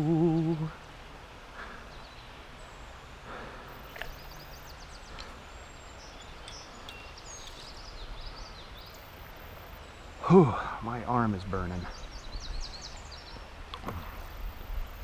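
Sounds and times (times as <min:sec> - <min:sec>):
birds chirping: 0:00.0 - 0:15.0
outdoor background hiss: 0:00.0 - 0:15.0.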